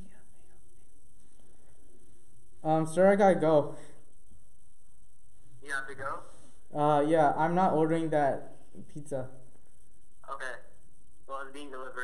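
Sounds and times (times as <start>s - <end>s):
faint whispering: 0.0s - 2.0s
low background hiss: 0.0s - 12.0s.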